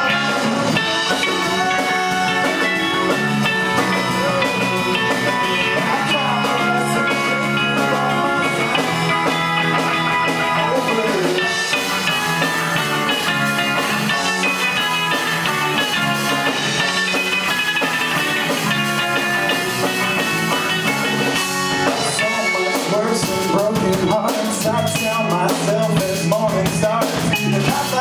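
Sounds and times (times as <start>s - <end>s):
rock band playing: 0.0s - 28.0s.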